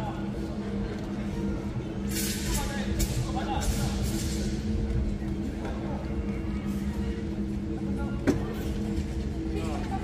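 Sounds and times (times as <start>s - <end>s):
sports hall hum: 0.0s - 10.0s.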